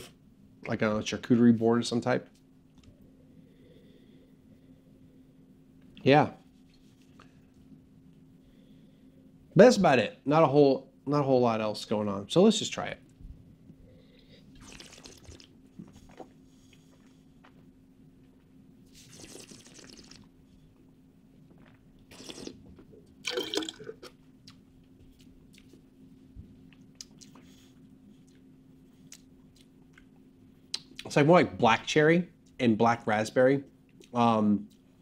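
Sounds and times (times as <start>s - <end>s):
faint steady hum: 0.0s - 35.0s
person slurping wine: 14.6s - 16.3s, 18.9s - 20.3s, 22.1s - 22.7s
wet mouth sounds: 14.6s - 16.4s, 18.9s - 20.4s, 21.6s - 24.6s.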